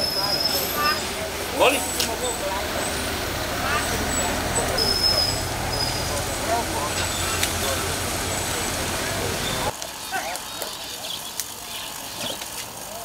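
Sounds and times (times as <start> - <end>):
low vehicle rumble: 0.0 - 10.0
din of scattered voices: 0.0 - 13.0.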